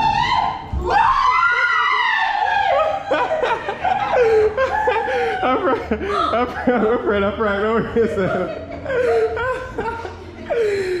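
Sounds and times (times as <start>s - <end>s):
woman screaming: 0.0s - 3.0s.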